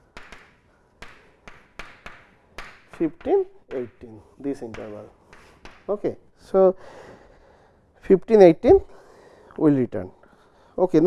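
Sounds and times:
chalk tapping on blackboard: 0:00.0 - 0:06.1.

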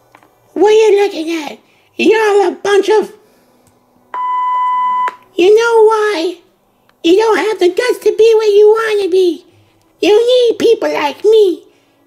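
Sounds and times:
censor bleep: 0:04.1 - 0:05.2
person speaking: 0:05.4 - 0:11.7.

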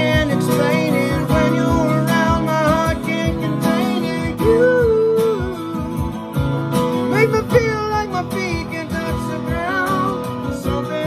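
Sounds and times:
backing guitar and beat: 0:00.0 - 0:11.0
man singing pop song: 0:00.0 - 0:11.0.

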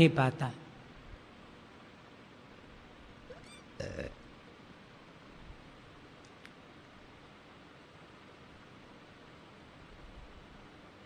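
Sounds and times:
recording hiss: 0:00.0 - 0:11.0
short pitched vocal sound: 0:03.3 - 0:04.2.

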